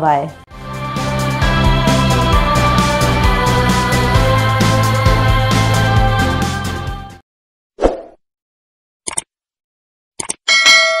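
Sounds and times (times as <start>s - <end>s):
bell chime: 10.5s - 11.0s.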